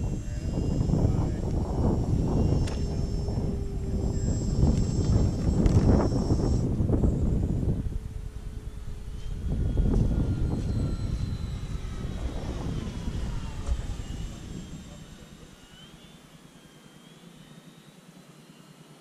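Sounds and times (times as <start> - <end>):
wind rumble on microphone: 0.0 - 15.6
model plane motor whine: 0.0 - 19.0.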